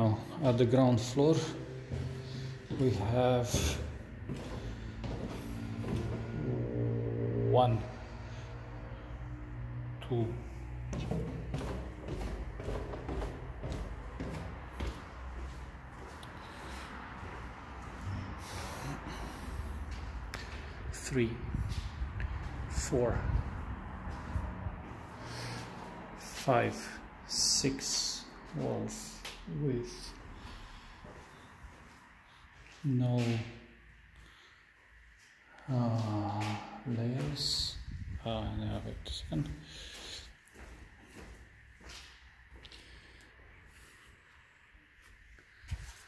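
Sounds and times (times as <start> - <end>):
man breathing through nose: 4.4 - 5.4, 16.2 - 17.2, 18.0 - 20.9, 25.0 - 26.1, 30.2 - 32.6, 39.6 - 40.5, 42.6 - 44.4.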